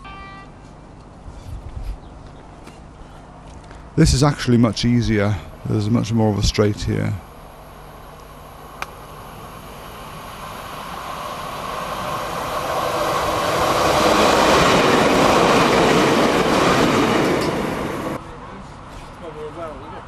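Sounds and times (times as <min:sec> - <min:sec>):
diesel train passing: 0:02.6 - 0:20.0
train wheels on rails: 0:08.0 - 0:19.8.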